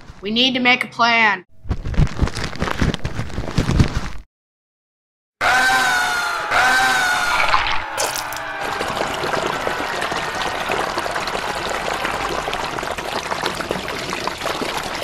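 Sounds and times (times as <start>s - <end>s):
water trickling and pouring: 8.0s - 15.0s.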